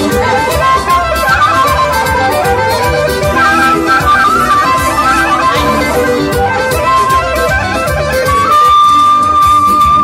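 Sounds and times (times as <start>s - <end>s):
amplified folk dance music: 0.0s - 10.0s.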